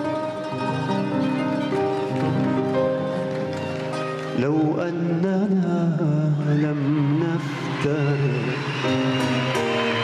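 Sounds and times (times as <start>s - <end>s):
orchestra playing: 0.0s - 5.0s.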